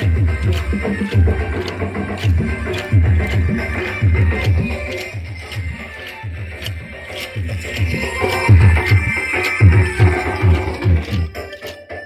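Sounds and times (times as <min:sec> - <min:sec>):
wooden sticks clicking together: 0:00.0 - 0:11.8
steady drum beat: 0:00.0 - 0:12.0.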